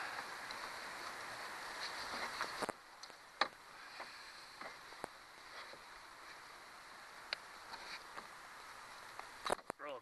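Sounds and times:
quiet hiss: 0.0 - 10.0.

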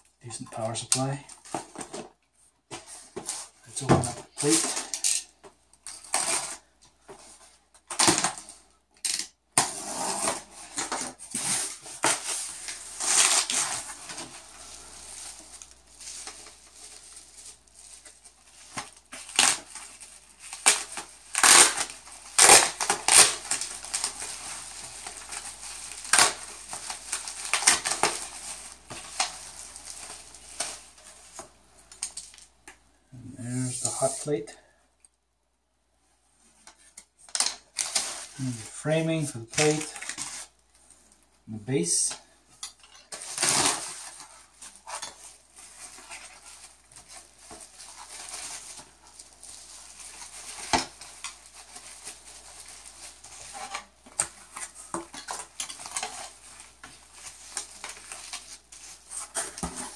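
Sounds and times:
bubble wrap crinkling: 0.8 - 32.9, 36.5 - 59.9
knife slitting packing tape: 9.0 - 14.2, 18.7 - 24.2, 43.1 - 44.2.

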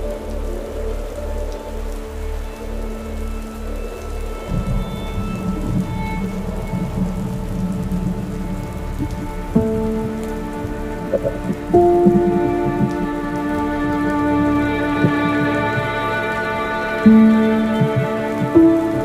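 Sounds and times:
slow music of held notes: 0.0 - 19.0
steady rain: 0.0 - 19.0
thunder rumbles: 4.5 - 19.0.

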